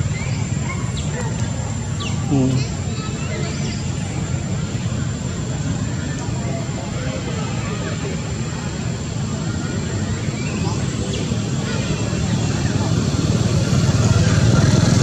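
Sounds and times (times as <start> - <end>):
faint voices: 0.0 - 15.0.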